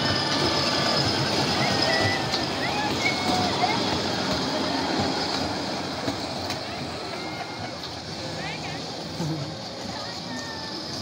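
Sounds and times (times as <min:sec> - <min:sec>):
train wheels rumbling on track: 0:00.0 - 0:11.0
people's voices: 0:00.3 - 0:11.0.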